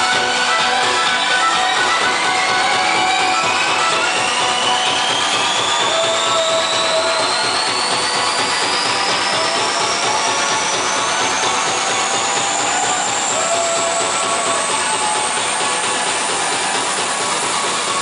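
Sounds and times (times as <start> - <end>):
fast dense drumming: 2.1 - 18.0.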